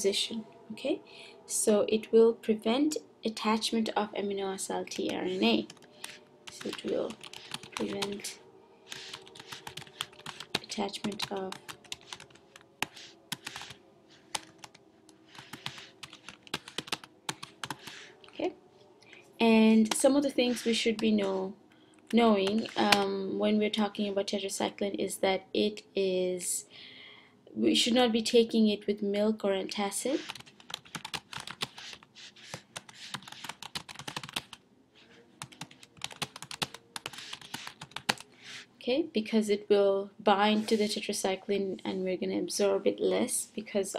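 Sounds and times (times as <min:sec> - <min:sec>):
computer keyboard typing: 0:04.8 - 0:18.1, 0:22.1 - 0:23.1, 0:30.2 - 0:34.6, 0:35.4 - 0:38.6.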